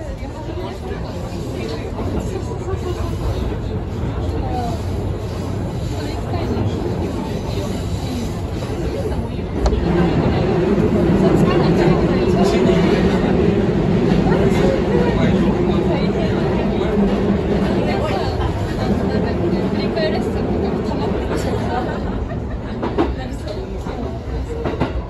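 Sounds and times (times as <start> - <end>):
electric train running on track: 0.0 - 25.0.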